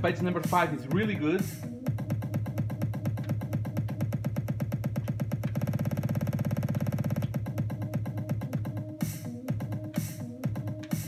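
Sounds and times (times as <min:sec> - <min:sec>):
electronic dance music stutter repeats: 0:00.0 - 0:11.0.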